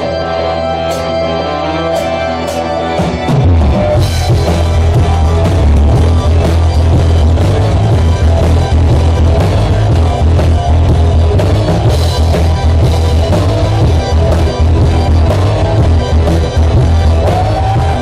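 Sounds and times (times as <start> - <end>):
bass guitar: 0.0 - 18.0
drum kit: 0.0 - 18.0
electric guitar: 0.0 - 18.0
keyboard: 0.0 - 18.0.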